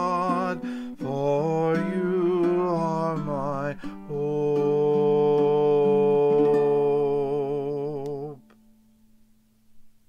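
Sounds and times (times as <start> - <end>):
man singing long note: 0.0 - 8.5
strummed ukulele chords: 0.0 - 8.8.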